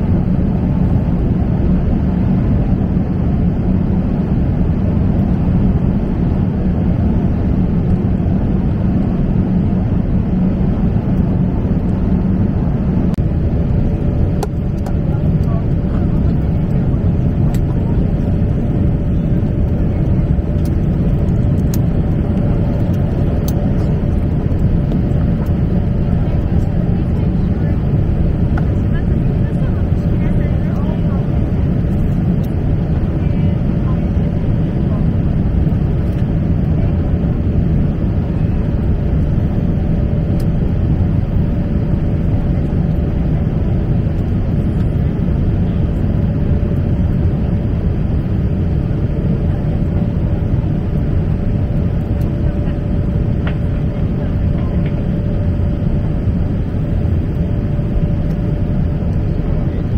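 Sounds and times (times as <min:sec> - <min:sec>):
constant cabin hum: 0:00.0 - 0:59.9
jet engines and airflow rushing: 0:00.0 - 0:59.9.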